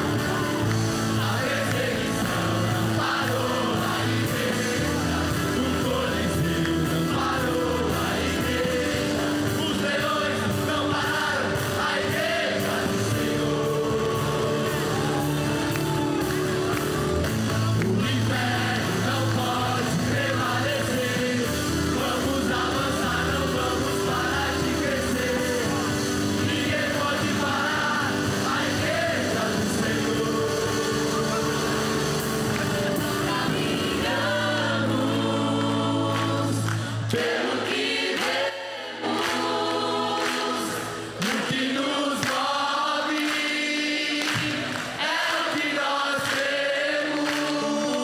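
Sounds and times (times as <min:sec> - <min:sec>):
choir singing gospel song: 0:00.0 - 0:48.0.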